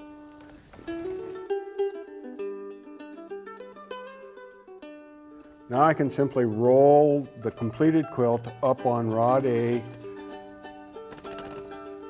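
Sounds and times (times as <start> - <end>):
plucked string music: 0.0 - 12.0.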